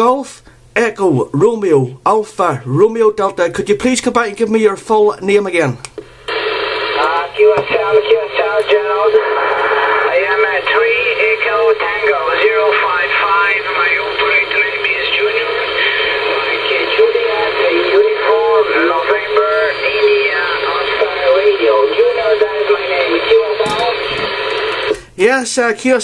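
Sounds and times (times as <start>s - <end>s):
radio hiss: 6.0s - 25.2s
voice over radio speaker: 6.3s - 25.0s.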